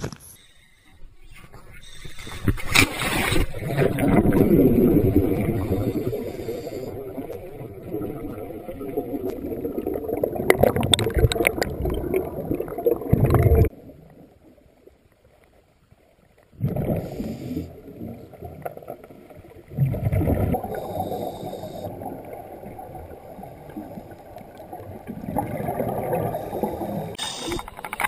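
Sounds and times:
muffled rush of water: 1.2s - 28.0s.

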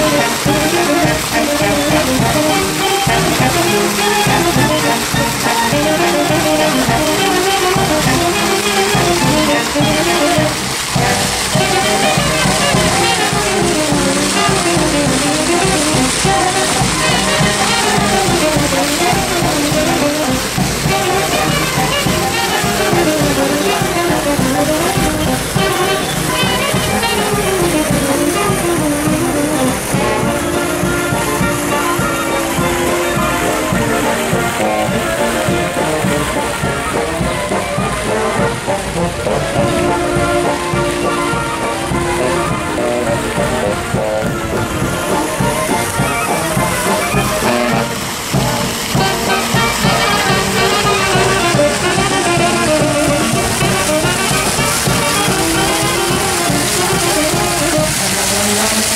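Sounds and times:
brass band playing: 0.0s - 58.9s.

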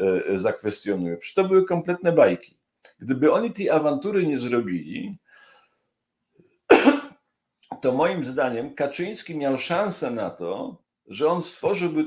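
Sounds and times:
man coughing: 6.7s - 7.8s.

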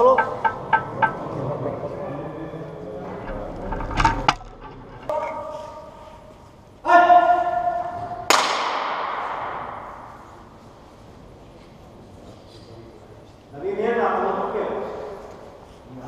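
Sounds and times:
sharp knocks: 0.0s - 1.4s.

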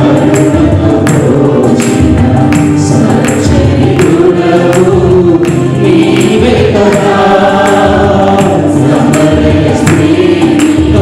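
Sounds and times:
choir singing: 0.0s - 11.0s
steady percussion beat: 0.0s - 11.0s.

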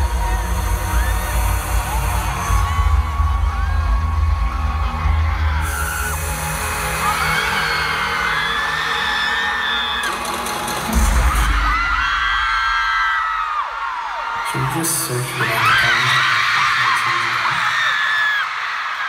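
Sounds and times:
loud amplified music: 0.0s - 16.2s
crowd screaming: 0.0s - 19.0s.

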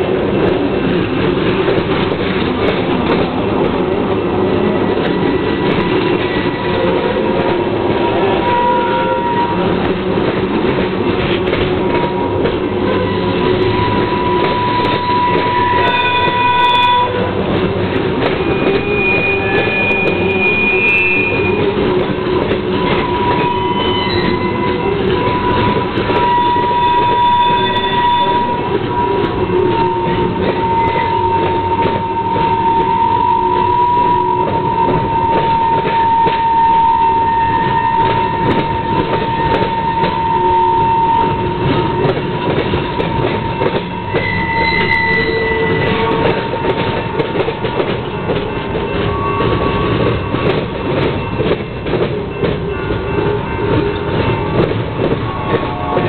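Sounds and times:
train wheels rumbling and clattering: 0.0s - 56.0s
wheels squealing: 11.3s - 56.0s.

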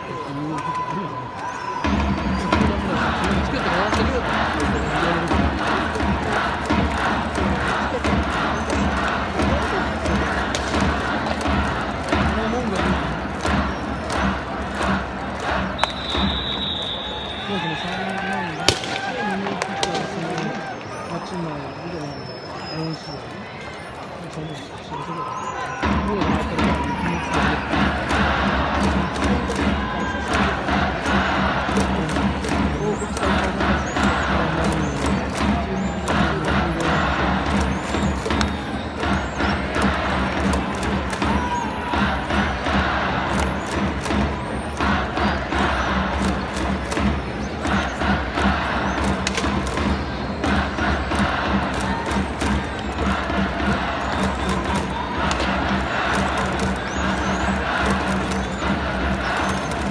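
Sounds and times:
fans chanting: 1.2s - 22.2s, 24.6s - 59.9s
crowd clapping in rhythm: 1.8s - 21.6s, 25.8s - 59.9s.

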